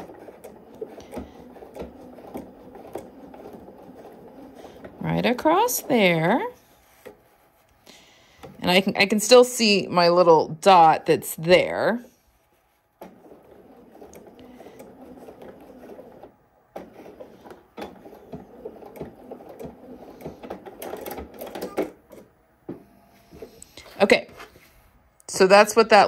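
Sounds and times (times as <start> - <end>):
sewing machine stitching: 0.0 - 9.9, 13.0 - 22.3.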